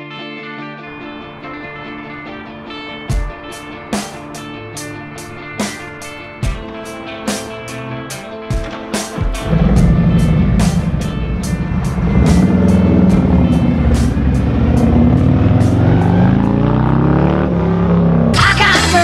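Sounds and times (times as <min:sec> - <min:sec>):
guitar music: 0:00.0 - 0:19.0
motorcycle engine accelerating: 0:01.1 - 0:19.0
person singing: 0:18.4 - 0:19.0.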